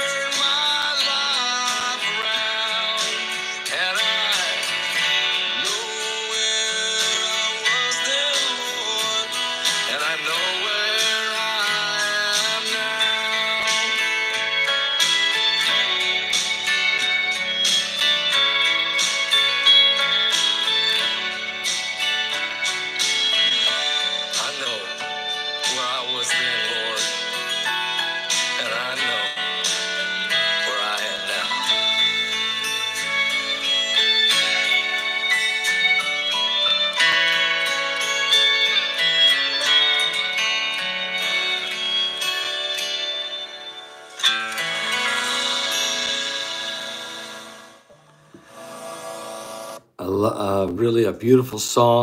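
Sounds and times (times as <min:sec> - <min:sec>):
man singing: 0:00.0 - 0:15.1, 0:23.4 - 0:27.2, 0:28.5 - 0:32.2, 0:45.0 - 0:47.7
guitar accompaniment: 0:00.0 - 0:52.0.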